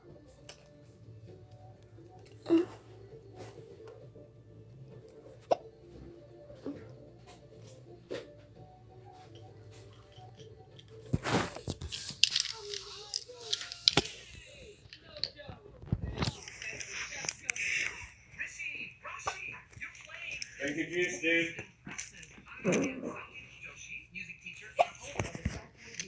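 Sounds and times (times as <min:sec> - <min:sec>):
rustling and crinkling: 0:11.0 - 0:18.1.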